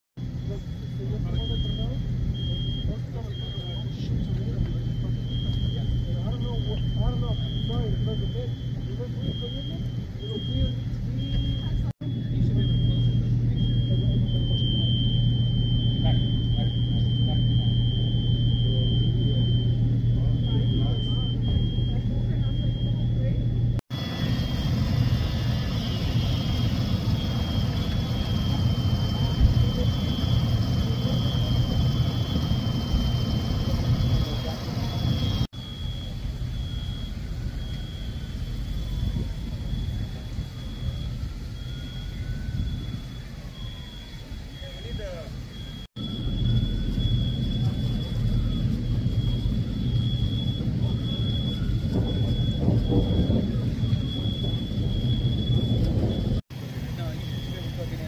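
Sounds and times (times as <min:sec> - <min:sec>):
low hum of engines: 0:00.2 - 0:58.0
faint voices: 0:00.3 - 0:24.2, 0:24.8 - 0:58.0.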